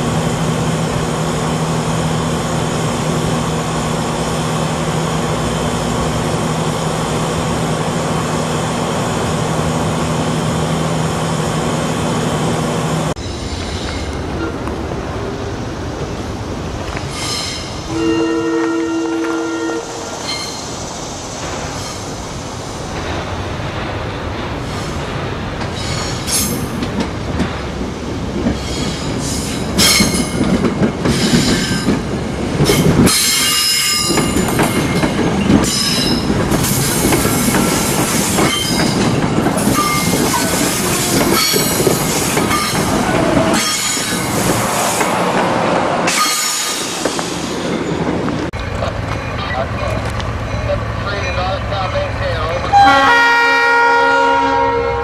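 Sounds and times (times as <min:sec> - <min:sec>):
two-note train horn: 0:17.9 - 0:20.1, 0:52.7 - 0:55.0
train wheels clattering over rail joints: 0:22.9 - 0:50.4.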